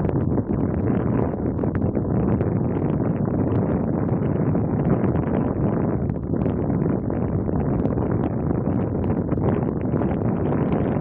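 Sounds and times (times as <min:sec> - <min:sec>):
wind blowing on microphone: 0:00.0 - 0:11.0.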